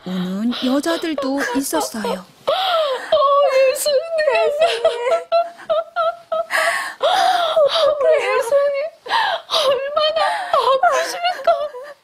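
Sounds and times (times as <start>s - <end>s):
woman sobbing: 0.2s - 12.0s.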